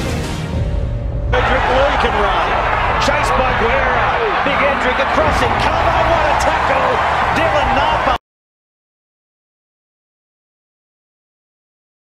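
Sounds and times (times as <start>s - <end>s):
stadium crowd roaring: 1.3s - 8.2s.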